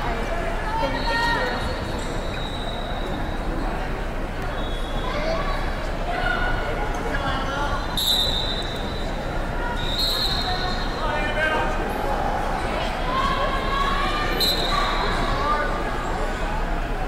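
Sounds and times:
referee whistle blasts: 0:08.0 - 0:09.0, 0:09.8 - 0:10.9, 0:14.3 - 0:15.0.

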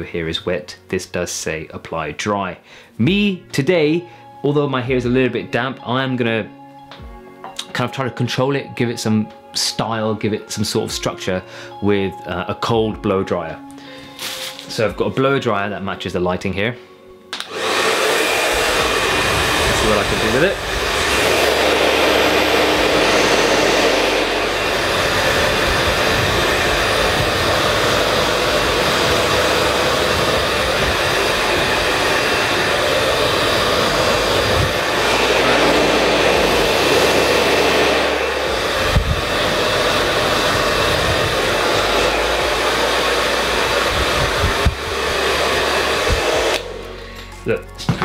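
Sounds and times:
hair dryer blowing: 0:13.9 - 0:14.9, 0:17.3 - 0:47.4.

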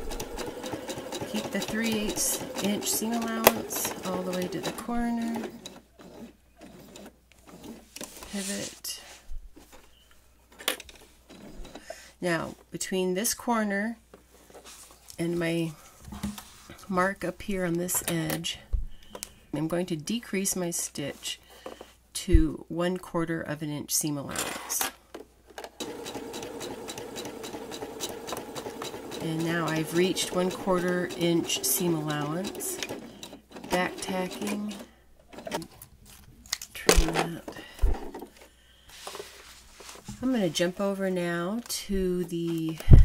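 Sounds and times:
sewing machine stitching: 0:00.0 - 0:07.8, 0:25.8 - 0:35.6.

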